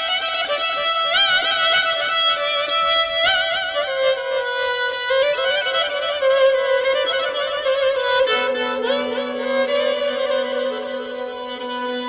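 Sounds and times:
solo violin melody: 0:00.0 - 0:12.0.

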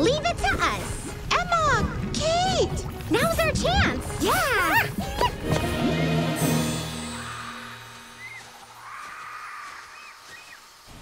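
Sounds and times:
short bird chirps: 0:08.0 - 0:08.6.

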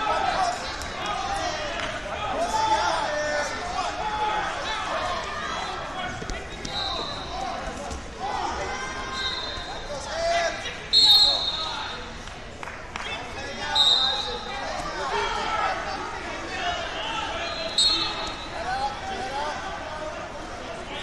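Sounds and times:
voices and shouts echoing: 0:00.0 - 0:21.0
referee whistle blasts: 0:06.6 - 0:07.3, 0:09.1 - 0:09.8, 0:10.9 - 0:12.0, 0:13.7 - 0:14.5, 0:17.4 - 0:18.6.

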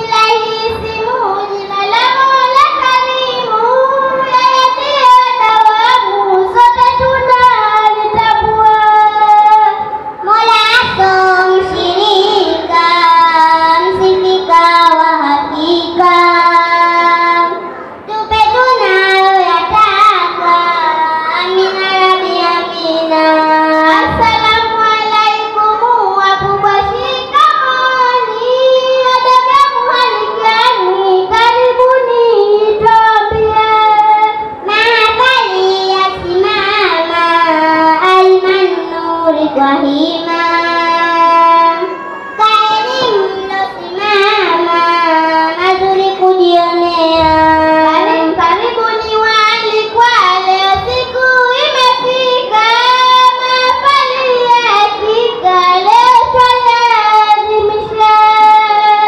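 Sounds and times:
girls singing into microphones: 0:00.0 - 0:59.0.

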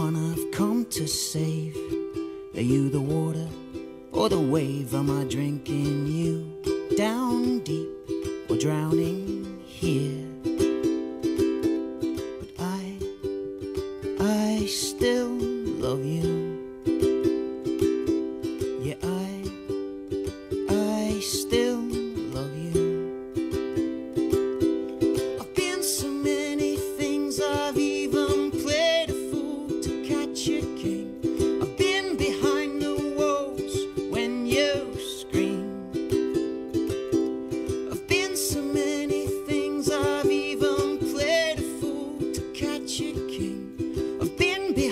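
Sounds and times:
man singing: 0:00.0 - 0:11.4, 0:12.1 - 0:13.4, 0:14.0 - 0:17.0, 0:18.0 - 0:23.4, 0:25.0 - 0:44.9
ukulele playing: 0:00.0 - 0:44.9.

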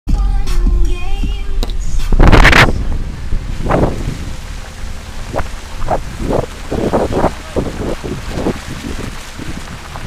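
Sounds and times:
steady low rumble: 0:00.1 - 0:10.0
wind buffeting microphone: 0:01.6 - 0:10.0.

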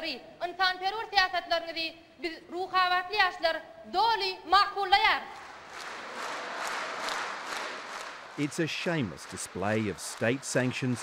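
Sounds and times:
audience applauding: 0:05.4 - 0:11.0.

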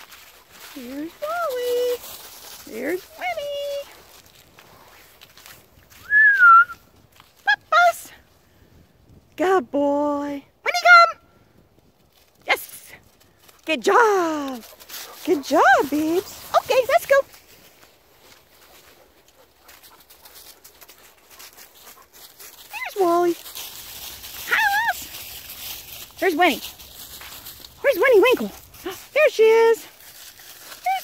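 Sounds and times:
footsteps through dry leaves: 0:00.0 - 0:08.5, 0:12.0 - 0:31.0
person whistling: 0:06.0 - 0:06.8.

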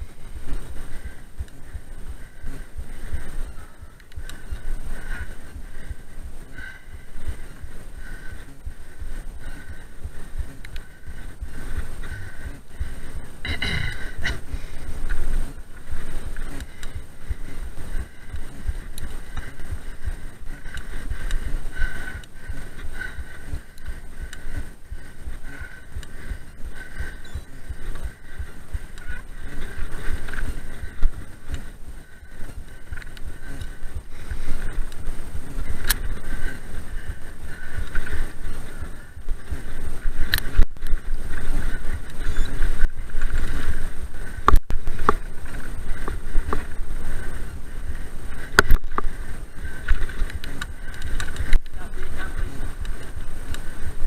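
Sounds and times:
bike rattling over rough dirt: 0:00.0 - 0:54.0.

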